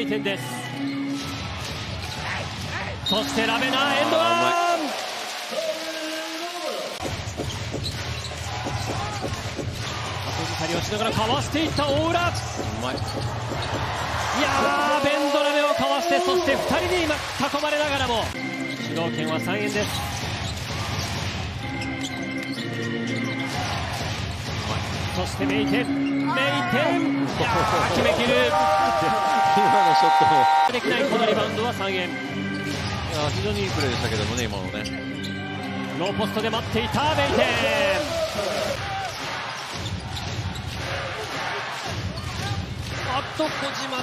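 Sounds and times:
arena music: 0:00.0 - 0:05.8, 0:06.9 - 0:44.0
crowd noise: 0:00.0 - 0:19.1, 0:19.8 - 0:44.0.

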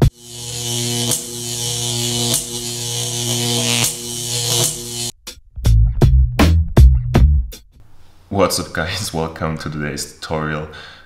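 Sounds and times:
electronic glitch buzz with hiss: 0:00.0 - 0:05.1.

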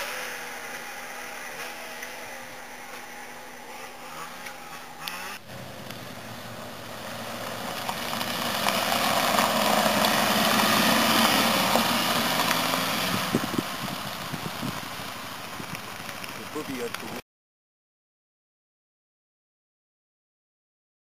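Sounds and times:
car driving past: 0:03.6 - 0:15.3.

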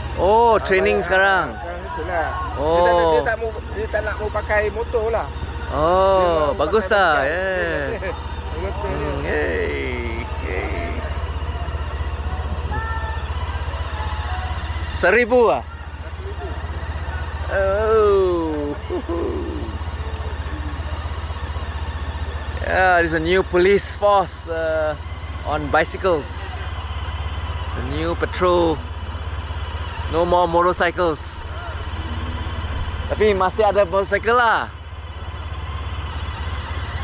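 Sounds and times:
vehicle engine idling: 0:00.0 - 0:37.0.

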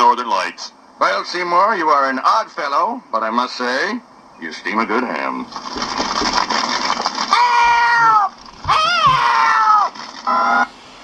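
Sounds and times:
elderly woman's shrill wavering cries: 0:07.3 - 0:10.6.

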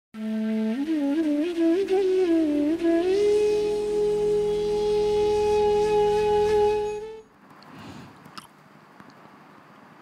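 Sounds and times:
flute long note: 0:00.2 - 0:07.3.

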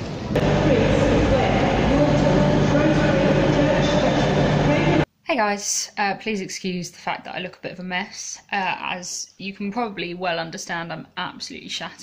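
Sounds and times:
train rumbling: 0:00.0 - 0:05.1.

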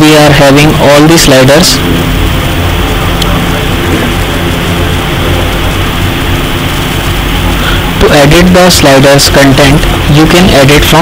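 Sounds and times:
steady loud hum: 0:00.0 - 0:11.0.

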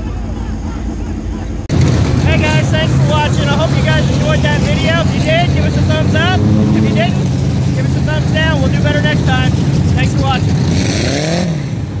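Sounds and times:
race car engines idling: 0:00.0 - 0:12.0
engine revving up: 0:01.7 - 0:12.0.

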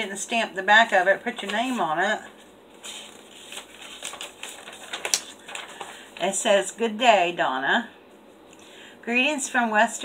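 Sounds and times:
paper crackling: 0:00.7 - 0:06.4.

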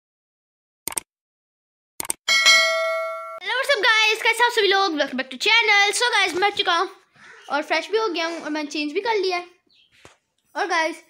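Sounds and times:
notification bell ding: 0:02.3 - 0:03.4.

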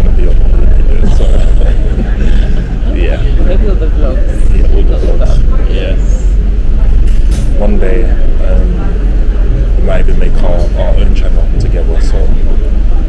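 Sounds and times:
conversational speech: 0:00.0 - 0:06.4, 0:07.5 - 0:13.0
steady low rumble: 0:00.0 - 0:13.0.

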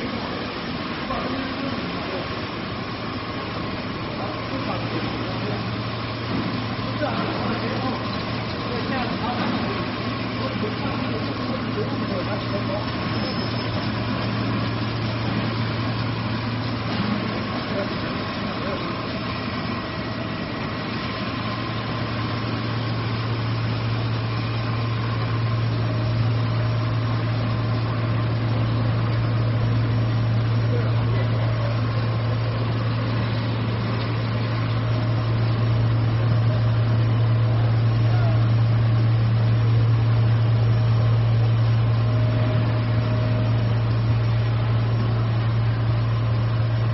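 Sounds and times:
machine hum with low drone: 0:00.0 - 0:46.9.

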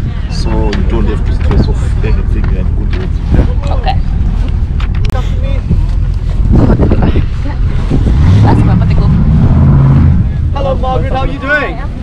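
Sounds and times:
wind buffeting microphone: 0:00.0 - 0:12.0
indistinct voices: 0:06.9 - 0:12.0.

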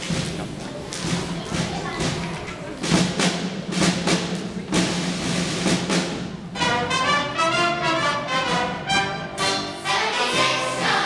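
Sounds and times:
instrumental accompaniment: 0:00.0 - 0:11.0
choir singing held chord: 0:09.4 - 0:11.0.

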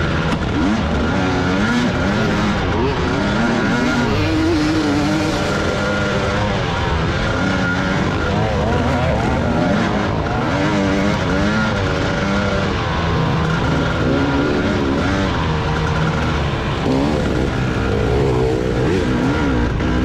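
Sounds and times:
dirt bike engine revving: 0:00.0 - 0:20.0.

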